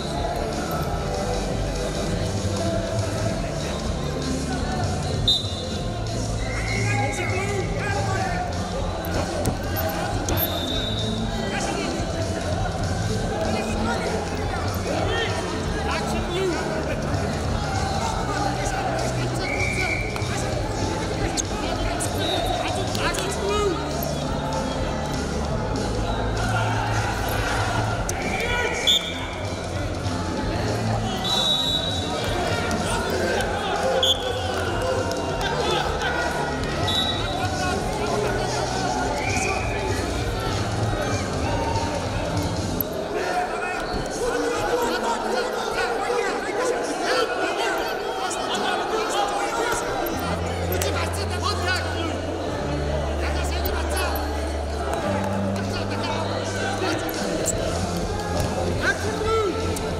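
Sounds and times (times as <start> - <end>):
indoor hall noise: 0.0 - 59.9
crowd shouting: 4.6 - 59.9
referee's whistle blasts: 5.2 - 5.8, 10.3 - 11.2, 28.3 - 29.2, 31.1 - 32.1, 34.0 - 34.5, 36.8 - 37.5.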